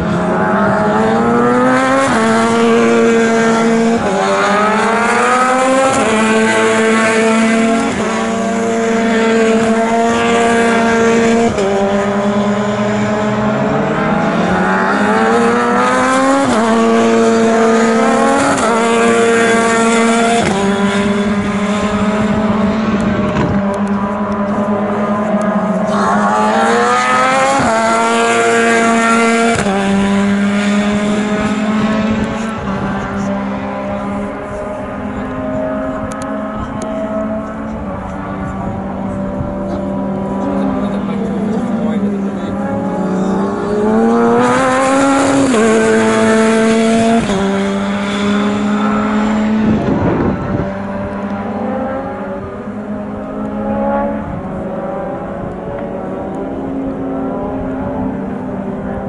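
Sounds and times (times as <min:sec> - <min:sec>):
race cars revving past: 0:00.0 - 0:59.0.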